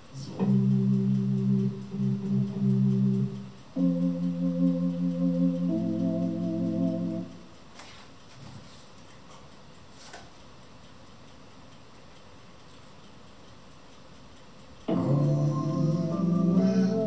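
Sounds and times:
faint background hiss: 0.0 - 17.0.

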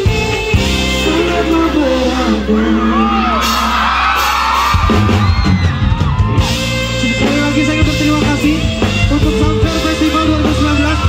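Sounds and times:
live band music: 0.0 - 11.0
crowd screaming and whooping: 0.9 - 7.5.

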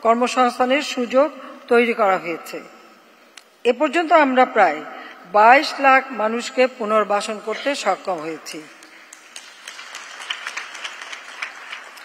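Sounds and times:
audience applauding: 9.1 - 12.0.

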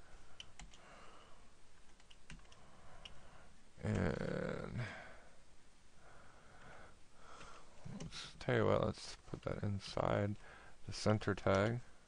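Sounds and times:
keyboard keys clicking: 0.4 - 0.8.

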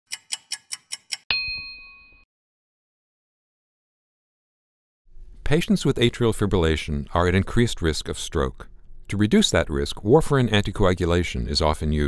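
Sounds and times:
clock ticking: 0.1 - 1.3
bright chime ding: 1.3 - 2.2.

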